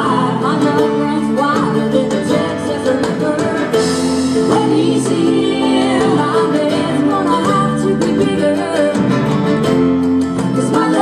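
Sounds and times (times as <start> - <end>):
acoustic guitars: 0.0 - 11.0
electric bass: 0.0 - 11.0
hand drums: 0.0 - 11.0
keyboard: 0.0 - 11.0.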